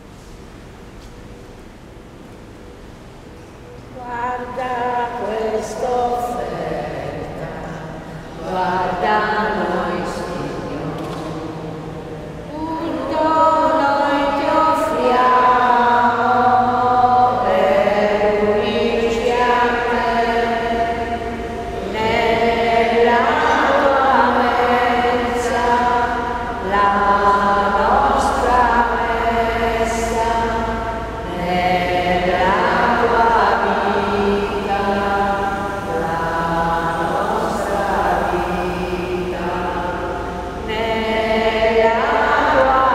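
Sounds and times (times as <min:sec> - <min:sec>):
liturgical chant singing: 0:04.0 - 0:42.9.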